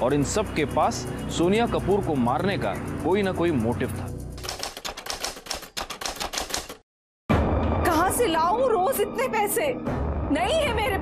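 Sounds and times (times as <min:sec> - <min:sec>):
music: 0:00.0 - 0:04.5, 0:07.3 - 0:11.0
typewriter key clatter: 0:04.4 - 0:06.8.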